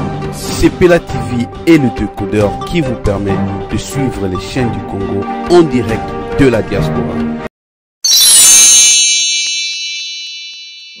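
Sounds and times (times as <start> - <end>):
bright high chime: 8.0 - 11.0.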